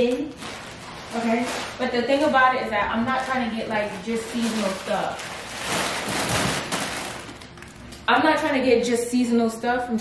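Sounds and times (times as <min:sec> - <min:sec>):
plastic packaging crinkling: 0:00.0 - 0:08.1.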